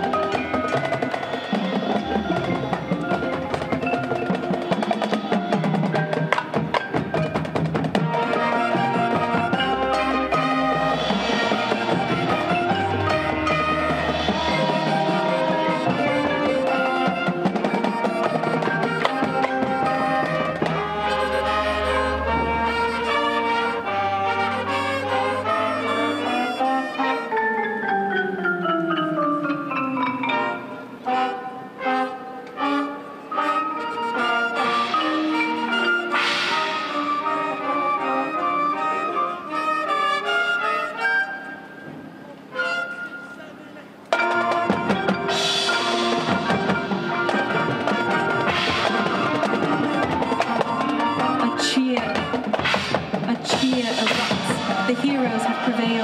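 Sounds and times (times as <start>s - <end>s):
marching drums: 0.0s - 26.7s, 34.1s - 38.4s, 44.1s - 56.0s
marching band brass: 0.0s - 27.4s, 29.3s - 56.0s
marimba run: 0.0s - 32.2s, 33.0s - 39.8s, 41.2s - 56.0s.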